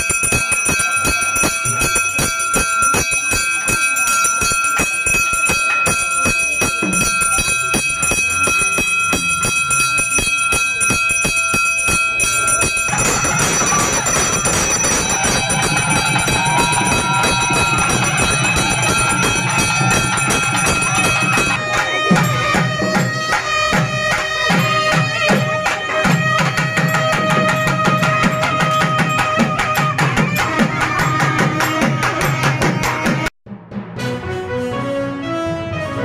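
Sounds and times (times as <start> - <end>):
hand bell ringing rapidly: 0.0 - 33.3.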